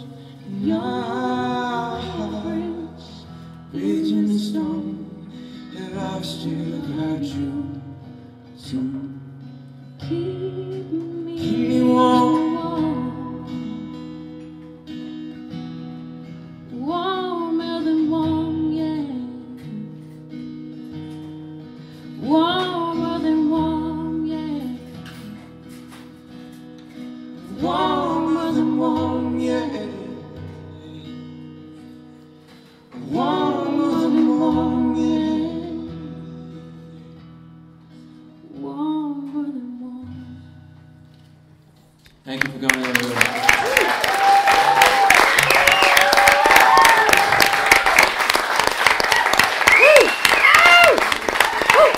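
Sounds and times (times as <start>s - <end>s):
person singing: 0.0s - 7.9s, 10.0s - 14.1s, 22.2s - 25.5s, 27.4s - 31.0s, 32.9s - 36.3s
acoustic guitar chords: 0.0s - 43.0s.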